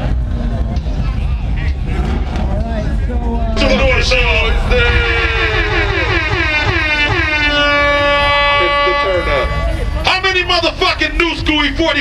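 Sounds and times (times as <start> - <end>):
deep bass rumble: 0.0 - 12.0
shouted voices: 3.3 - 12.0.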